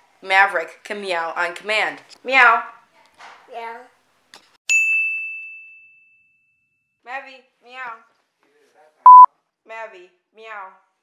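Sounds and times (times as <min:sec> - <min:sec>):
high bell ding: 0:04.7 - 0:06.8.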